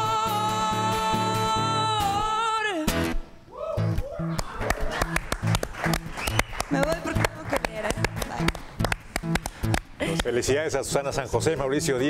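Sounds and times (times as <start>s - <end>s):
music: 0.0s - 12.0s
people clapping: 4.3s - 10.4s.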